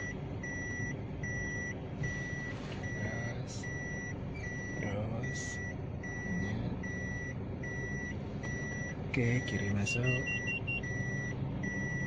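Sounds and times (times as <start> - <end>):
low engine hum: 0.0 - 12.0
reverse warning beeper: 0.0 - 12.0.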